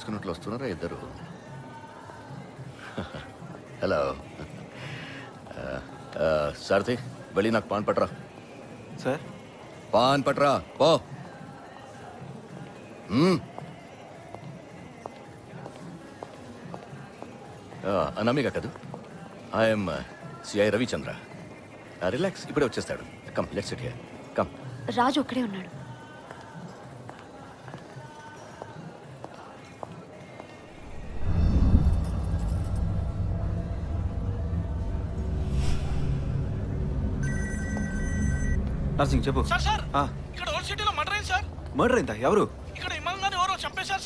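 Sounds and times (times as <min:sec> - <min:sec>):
low film score: 0:30.7 - 0:44.0
telephone ringing tone: 0:37.2 - 0:38.7.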